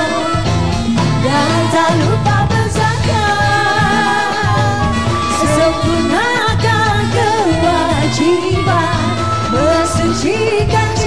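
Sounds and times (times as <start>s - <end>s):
hand drums: 0.0s - 11.0s
live band playing: 0.0s - 11.0s
women singing: 0.0s - 11.0s.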